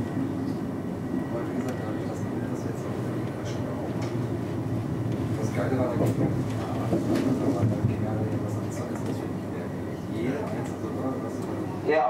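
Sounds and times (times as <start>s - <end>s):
train rumble: 0.0s - 11.6s.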